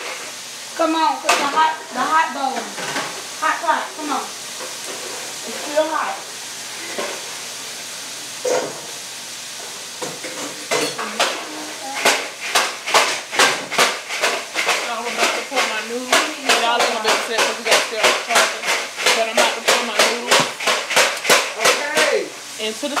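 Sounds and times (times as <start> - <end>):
sharp knocks or claps: 12.0 - 22.3
person's voice: 14.9 - 20.6.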